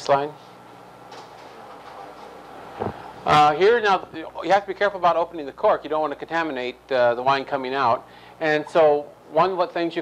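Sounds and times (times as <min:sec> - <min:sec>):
room hiss and hum: 0:00.0 - 0:10.0.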